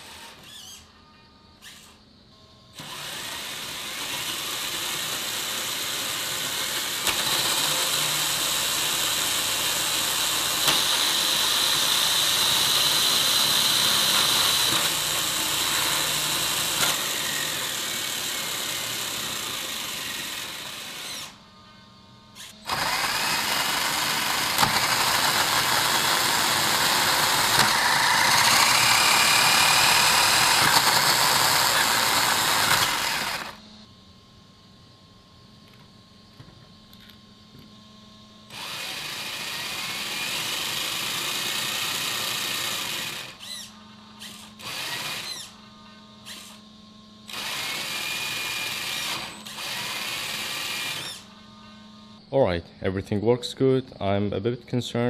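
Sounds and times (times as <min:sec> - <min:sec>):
electric motor whirring: 0:00.0 - 0:00.9, 0:02.8 - 0:21.5, 0:22.3 - 0:33.9, 0:38.5 - 0:52.2
motor whine rising in pitch: 0:02.7 - 0:21.7, 0:22.3 - 0:33.9, 0:36.8 - 0:52.3.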